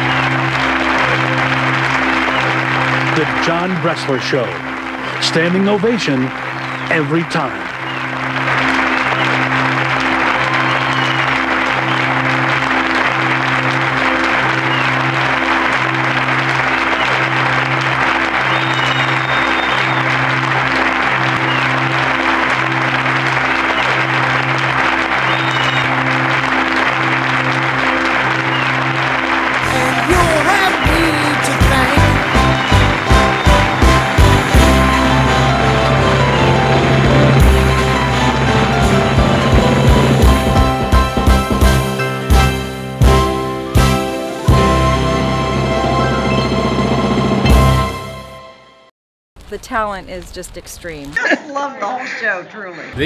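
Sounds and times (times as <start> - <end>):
audience applauding: 0.0 - 48.0
music with low pulse: 0.0 - 48.7
theme music: 0.0 - 48.9.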